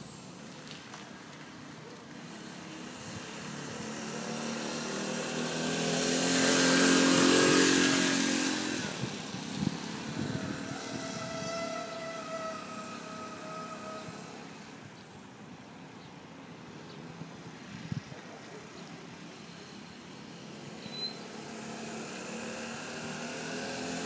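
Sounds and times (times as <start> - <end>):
motorised bicycle engine passing: 0.0 - 15.0, 19.3 - 24.0.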